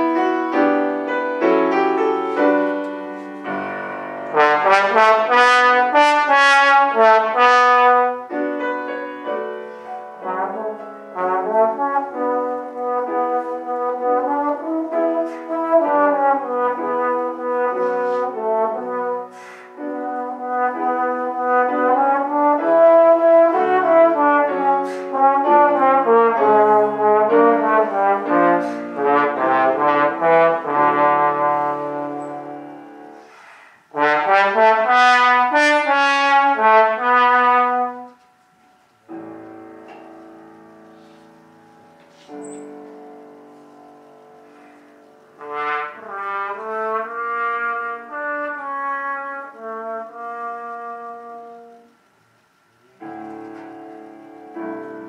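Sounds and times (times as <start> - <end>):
trombone melody: 0.0 - 38.4, 39.1 - 52.0
piano accompaniment: 0.0 - 52.2, 52.8 - 55.0.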